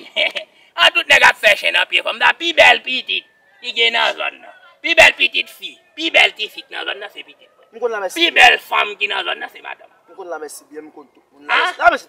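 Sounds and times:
man speaking quickly: 0.0 - 12.0.

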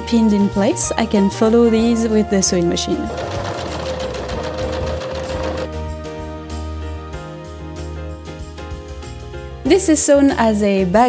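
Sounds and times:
electric sewing machine stitching: 2.8 - 5.7.

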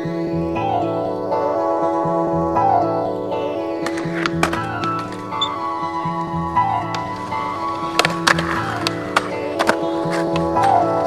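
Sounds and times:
music: 0.0 - 11.0
skateboards clacking on concrete: 3.8 - 11.0.

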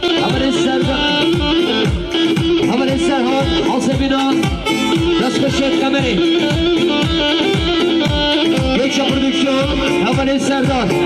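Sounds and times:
loud amplified folk dance music: 0.0 - 11.0
repeating drum beat: 0.0 - 11.0.

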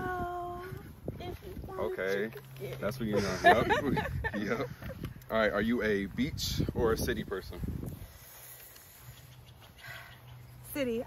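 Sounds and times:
soft rustle or breath: 7.5 - 10.7.

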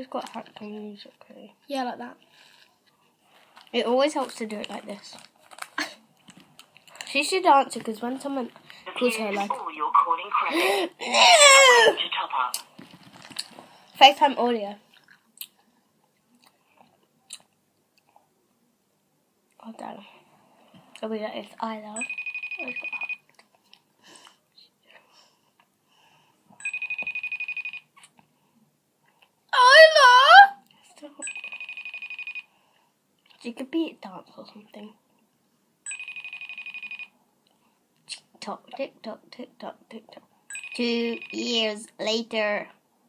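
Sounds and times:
phone call ringing trill: 22.0 - 23.2, 26.6 - 27.9, 31.2 - 32.5, 35.9 - 37.1, 40.5 - 41.6.

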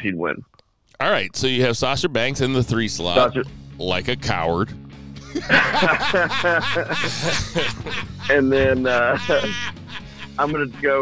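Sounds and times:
man laughing: 5.2 - 11.0.

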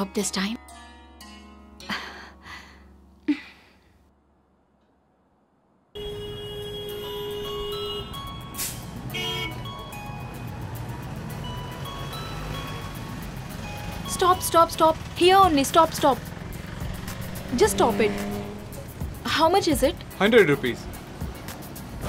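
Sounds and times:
traffic noise: 5.3 - 22.0.

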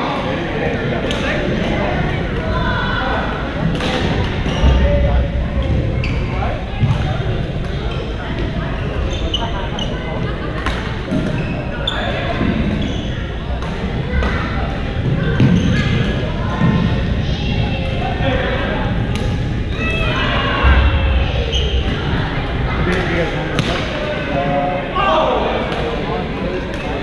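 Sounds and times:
hubbub of echoing voices: 0.0 - 27.0.

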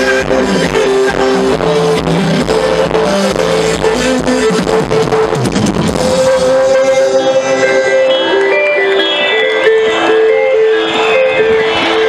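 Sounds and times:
live pop band playing: 0.0 - 12.0.

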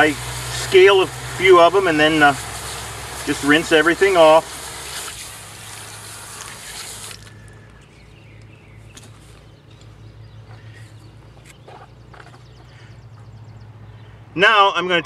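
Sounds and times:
hose water spraying on plastic: 0.0 - 7.8
steady low hum: 0.0 - 14.2.

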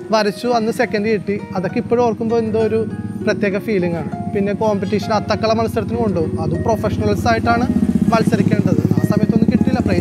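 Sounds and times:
motorcycle engine running: 0.4 - 10.0.

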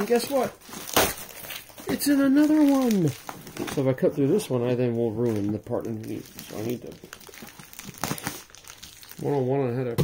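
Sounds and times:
plastic crinkling: 0.0 - 10.0.

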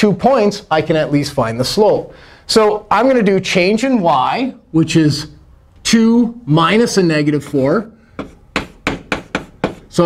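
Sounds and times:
chalk tapping on a chalkboard: 8.2 - 10.0.

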